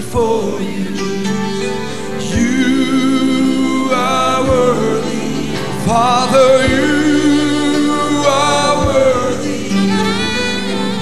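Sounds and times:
choir voices: 0:00.0 - 0:11.0
keyboard chords: 0:00.0 - 0:11.0
man singing with vibrato: 0:00.0 - 0:11.0.

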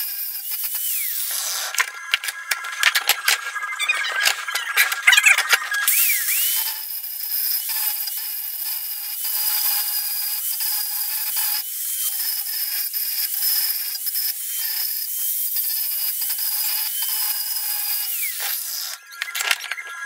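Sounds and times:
angle grinder grinding steel pipe: 0:00.0 - 0:20.0.

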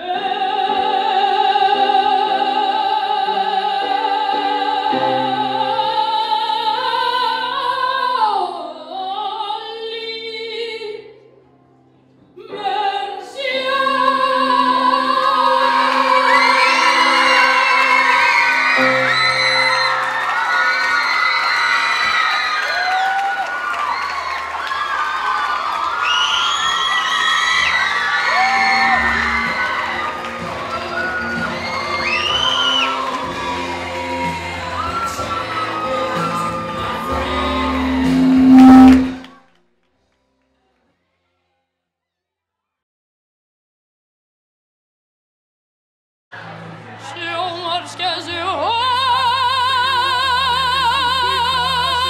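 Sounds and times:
backing track music: 0:13.7 - 0:22.0, 0:28.3 - 0:39.3
audience cheering and whooping: 0:15.2 - 0:38.5
boy singing a long note: 0:35.8 - 0:39.2.

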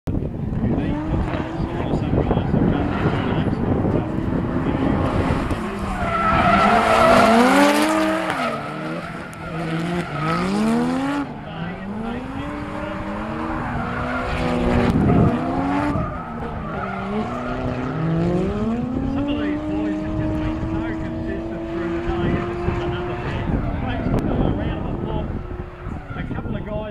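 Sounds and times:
car engines revving: 0:00.1 - 0:26.9
tyre squeal: 0:05.6 - 0:10.9.

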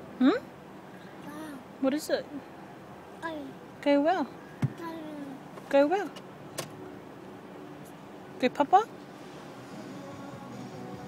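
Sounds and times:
faint car cabin hum: 0:00.1 - 0:11.0.

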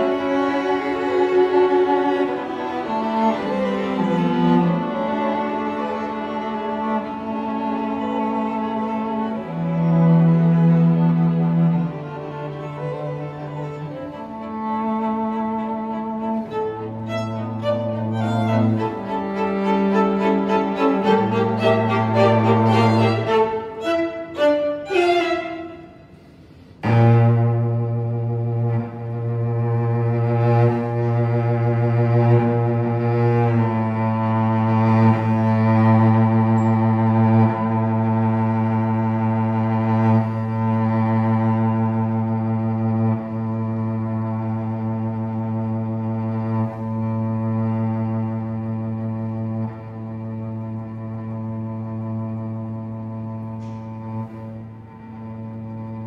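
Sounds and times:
cello low drone: 0:00.0 - 0:56.0
violins holding notes: 0:00.0 - 0:56.0.

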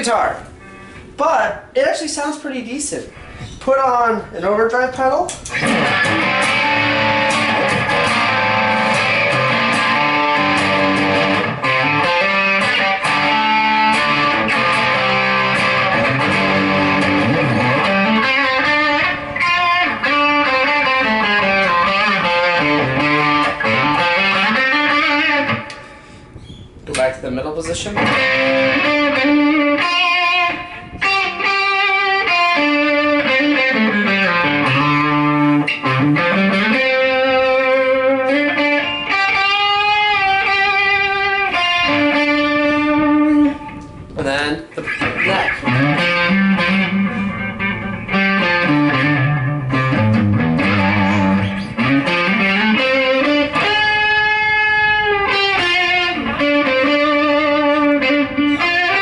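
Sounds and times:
overdriven electric guitar riffs: 0:00.4 - 0:01.7, 0:05.3 - 0:26.4, 0:27.9 - 0:59.0.

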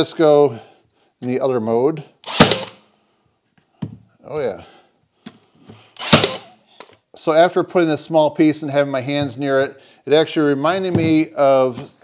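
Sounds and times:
nail gun shot: 0:02.2 - 0:02.8, 0:06.0 - 0:06.6.

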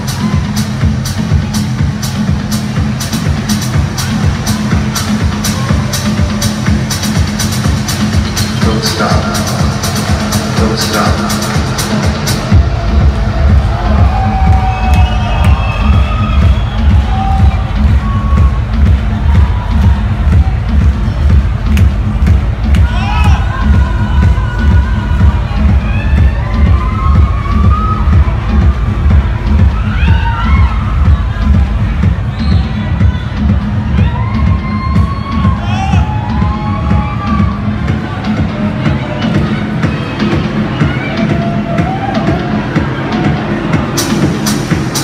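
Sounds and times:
techno music: 0:00.0 - 0:45.0
crowd cheering: 0:09.6 - 0:45.0
kick drum: 0:10.6 - 0:43.9.

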